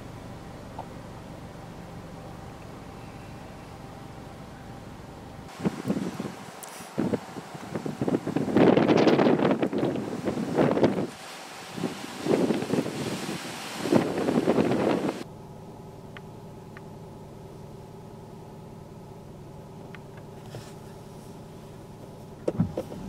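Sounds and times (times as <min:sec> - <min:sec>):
steady mechanical hum: 0:00.0 - 0:23.0.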